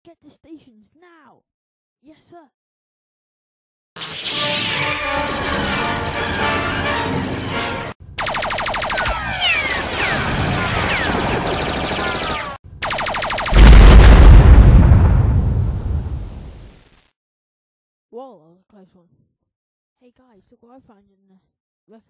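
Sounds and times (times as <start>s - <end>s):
blaster fire with falling zaps: 4.0s - 6.3s, 8.2s - 17.1s
film music: 4.0s - 8.0s
loud explosion with rumble: 13.5s - 16.8s.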